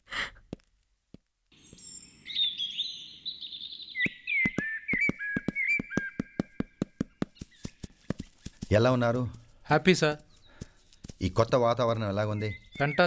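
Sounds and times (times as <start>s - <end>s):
birds chirping and whistling: 1.6s - 9.2s, 9.9s - 13.0s
jogging footsteps: 4.4s - 13.0s.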